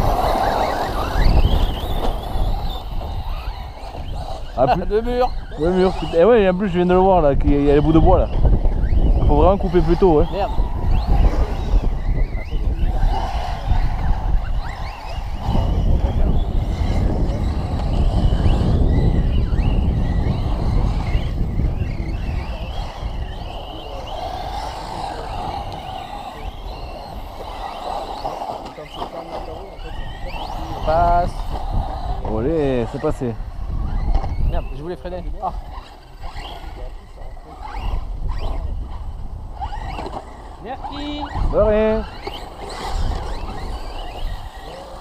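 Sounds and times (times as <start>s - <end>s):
electric rc car motors whining: 0.0s - 45.0s
wind buffeting microphone: 0.0s - 45.0s.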